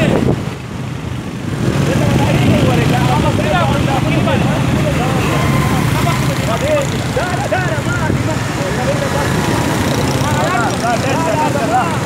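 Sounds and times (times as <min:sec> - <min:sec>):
men talking and calling out: 0:00.0 - 0:12.0
motorcycle engine rumbling: 0:00.0 - 0:12.0.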